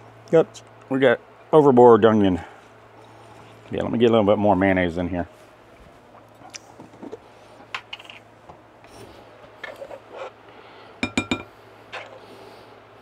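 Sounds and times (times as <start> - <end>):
knife clinking on glass bowl: 11.0 - 11.5.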